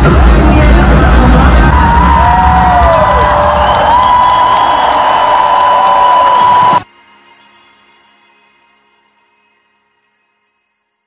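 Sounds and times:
loud pop music: 0.0s - 6.8s
crowd cheering: 1.4s - 6.9s.

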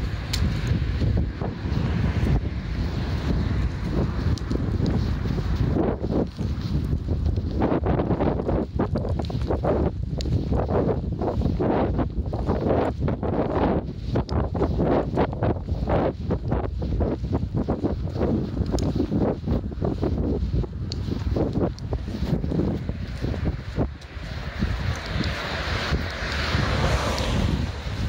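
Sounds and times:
wind buffeting a microphone: 0.0s - 28.0s.

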